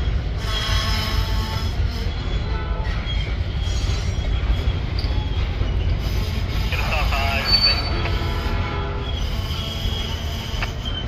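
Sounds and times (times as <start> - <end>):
freight train rumbling past: 0.0 - 11.0
high wheel squeals: 0.0 - 11.0.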